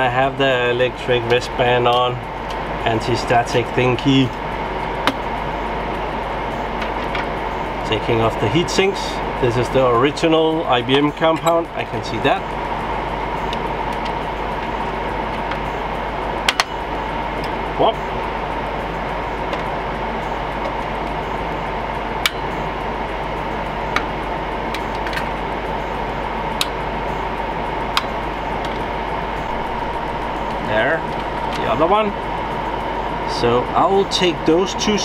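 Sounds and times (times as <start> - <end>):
cooling fans whirring: 0.0 - 35.0.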